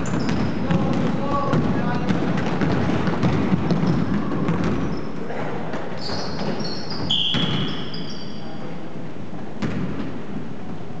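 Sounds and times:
basketball bounce on hardwood floor: 0.0s - 5.0s, 6.0s - 8.0s, 9.6s - 10.1s.

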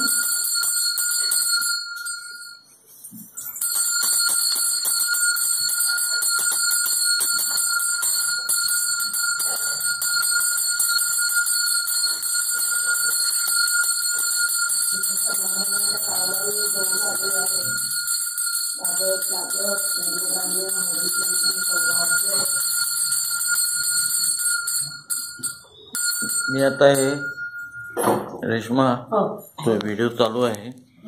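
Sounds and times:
hand bell ringing: 0.0s - 28.3s.

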